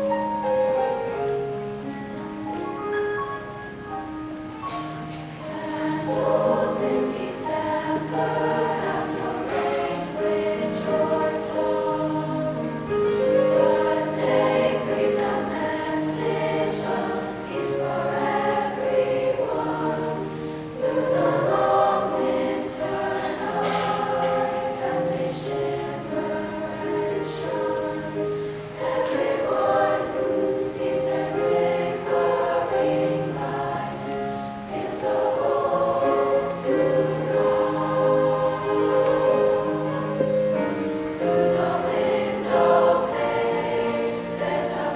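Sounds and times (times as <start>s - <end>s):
girls choir singing in harmony: 0.0s - 44.9s.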